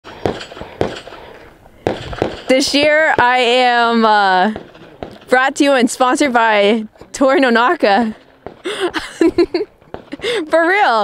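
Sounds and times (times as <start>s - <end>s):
handgun shots with echo: 0.2s - 1.2s, 1.8s - 2.5s.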